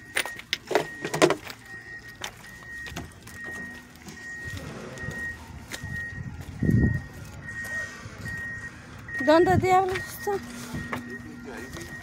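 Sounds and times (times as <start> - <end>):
reversing alarm beeps: 0.0 - 12.0
low yard rumble: 0.3 - 12.0.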